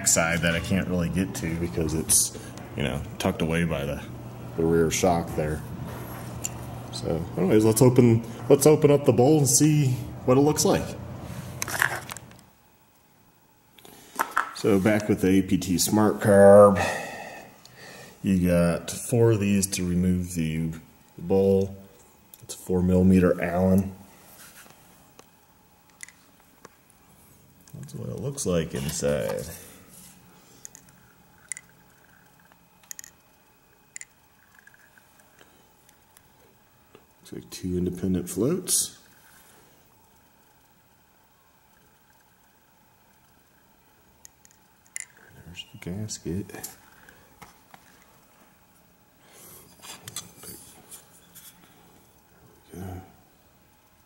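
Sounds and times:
faint handling noises: 0:23.4 - 0:37.2
soft rubbing of parts: 0:24.0 - 0:37.2, 0:44.3 - 0:52.7.

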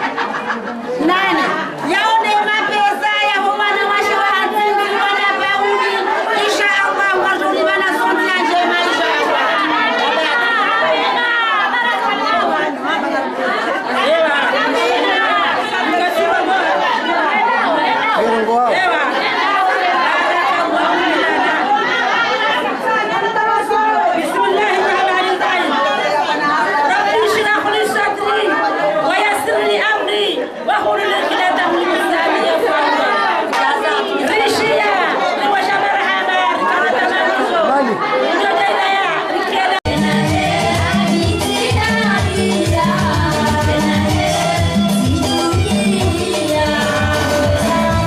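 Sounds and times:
women's voices overlapping: 0:00.0 - 0:48.0
woman speaking into a microphone: 0:01.0 - 0:10.4, 0:26.9 - 0:32.6.

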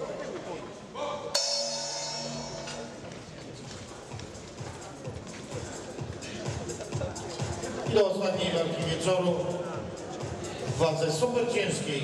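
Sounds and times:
boxing ring bell ringing: 0:01.4 - 0:03.0.

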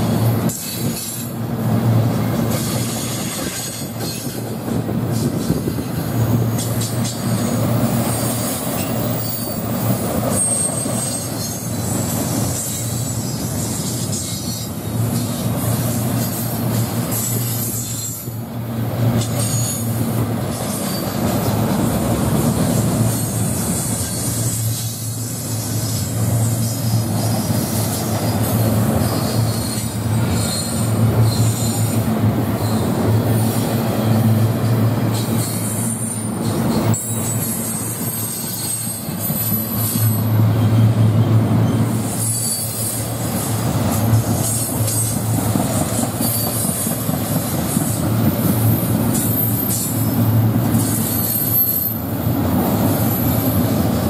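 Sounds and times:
train wheels rumbling on rail: 0:00.0 - 0:54.0
high metallic wheel squeals: 0:06.2 - 0:15.4, 0:17.1 - 0:18.4, 0:19.3 - 0:21.7, 0:23.1 - 0:32.0, 0:32.6 - 0:34.4, 0:35.1 - 0:45.4, 0:46.0 - 0:47.1, 0:47.7 - 0:53.9.

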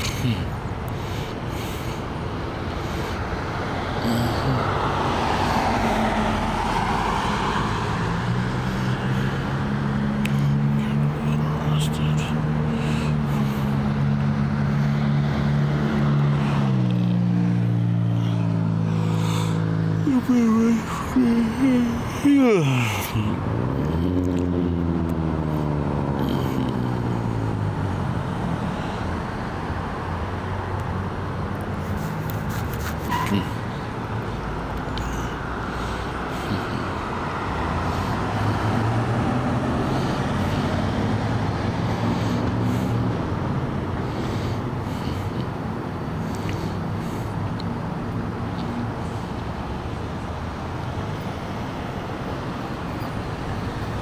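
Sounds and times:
road traffic: 0:00.0 - 0:54.0
vehicle driving past: 0:03.4 - 0:20.0, 0:35.4 - 0:45.3.

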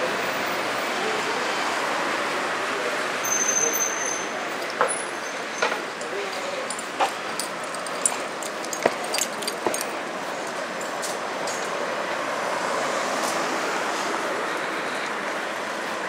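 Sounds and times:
city street traffic: 0:00.0 - 0:16.0.

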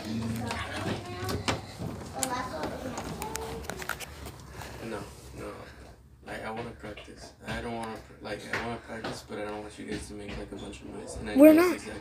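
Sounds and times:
children's voices: 0:11.4 - 0:11.8.

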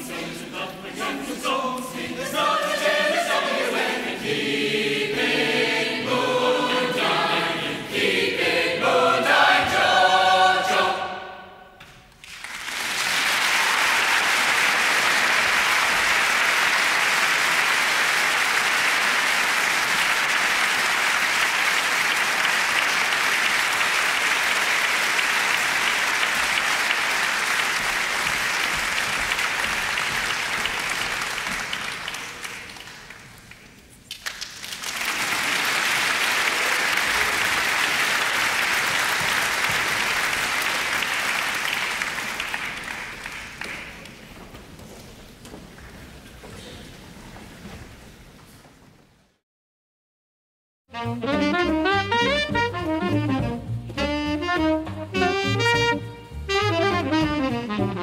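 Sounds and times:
audience applauding: 0:12.2 - 0:44.3.

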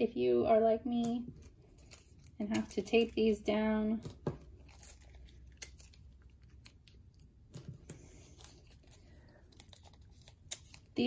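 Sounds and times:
tape tearing and crinkling: 0:01.0 - 0:11.0.

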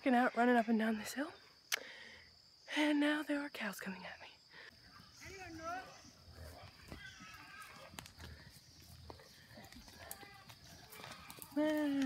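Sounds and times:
cattle hoof steps: 0:06.3 - 0:12.0.

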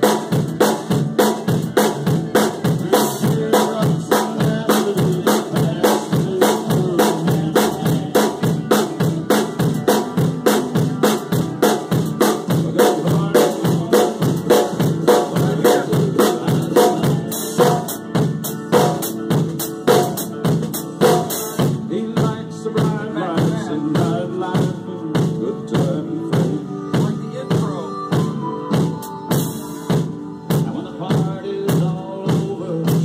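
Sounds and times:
country song with band: 0:00.0 - 0:33.0
drum kit groove: 0:00.0 - 0:33.0.

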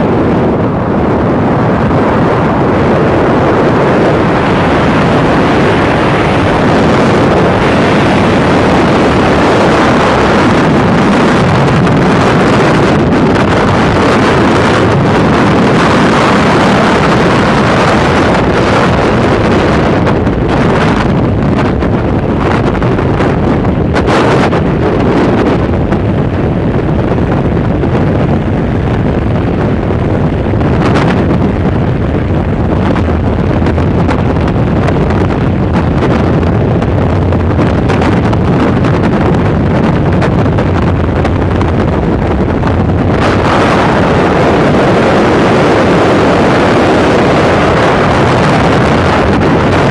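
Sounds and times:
wind rushing over microphone: 0:00.0 - 0:49.9.

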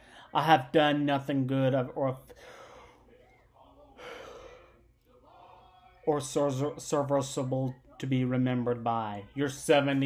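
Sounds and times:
man speaking: 0:00.3 - 0:02.3, 0:03.6 - 0:10.0.

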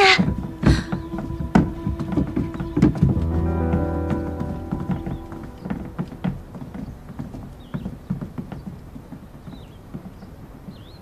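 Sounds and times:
footsteps on hard floor: 0:00.0 - 0:09.2.

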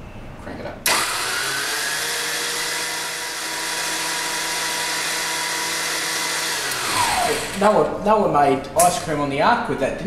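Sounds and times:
stand mixer motor whine: 0:00.9 - 0:07.8.

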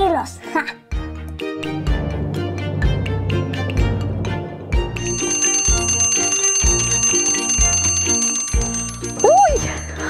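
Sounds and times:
background music with steady beat: 0:00.0 - 0:10.0
alarm clock bell ringing: 0:05.0 - 0:10.0.

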